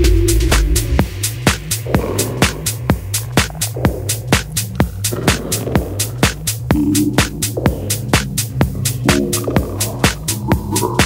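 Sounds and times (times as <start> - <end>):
low bass drone: 0.0 - 11.0
off-beat hi-hats: 0.0 - 11.0
techno kick drum: 0.0 - 11.0.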